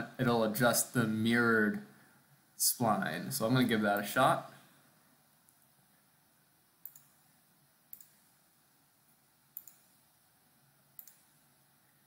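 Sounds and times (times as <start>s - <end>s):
computer mouse clicks: 6.8s - 7.2s, 7.9s - 8.3s, 9.5s - 10.0s, 11.0s - 11.4s.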